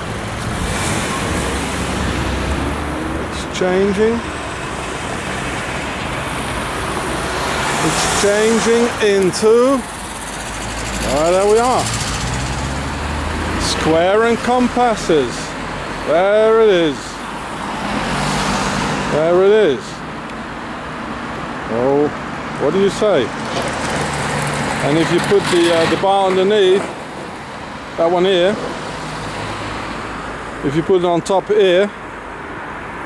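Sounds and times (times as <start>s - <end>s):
tyre and road noise: 0.0s - 33.0s
car driving past: 4.2s - 9.2s, 9.8s - 16.0s, 17.4s - 19.2s.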